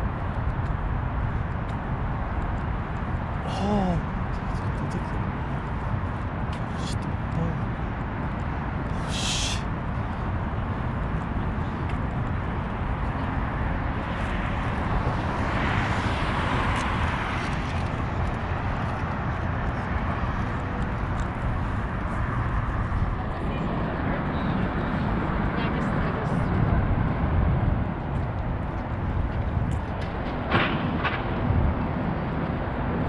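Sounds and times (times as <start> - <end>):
traffic noise: 0.0 - 33.0
wind buffeting microphone: 0.0 - 33.0.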